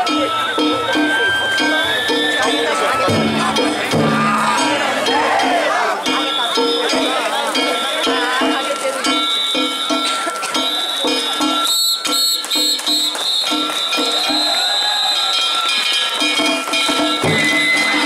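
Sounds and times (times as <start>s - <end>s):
hand gongs ringing: 0.0s - 7.2s, 15.6s - 18.0s
crowd shouting: 0.0s - 11.3s, 13.1s - 15.8s, 17.2s - 18.0s
drum beating rapidly: 2.2s - 7.2s, 16.3s - 18.0s.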